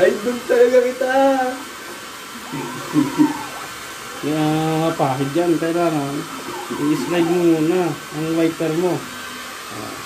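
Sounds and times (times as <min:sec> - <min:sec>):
steady whirring noise: 0:00.0 - 0:10.0.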